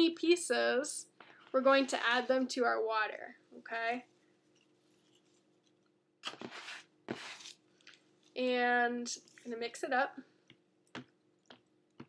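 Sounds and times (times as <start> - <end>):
paper rustling: 6.2 - 8.0.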